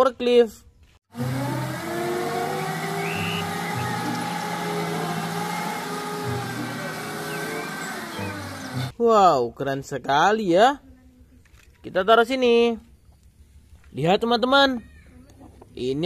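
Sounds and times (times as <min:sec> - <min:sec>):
forklift engine running: 0:01.1 - 0:08.9.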